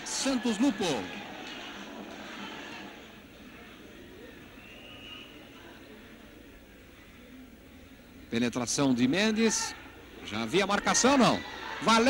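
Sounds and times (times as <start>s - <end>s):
murmur of stadium crowd: 0.0s - 12.0s.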